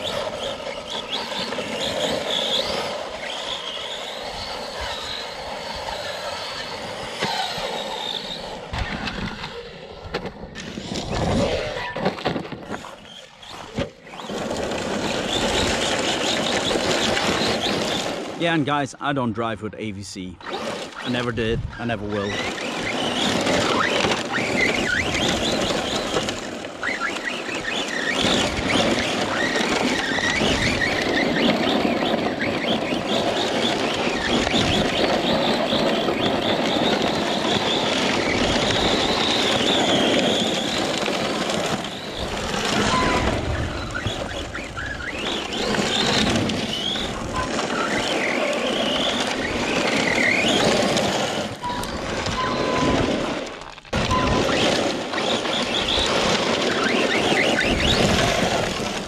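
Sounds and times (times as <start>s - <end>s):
electric motor whining: 0.0s - 18.4s, 20.4s - 59.0s
tyres rushing over gravel: 9.9s - 19.0s, 20.5s - 59.0s.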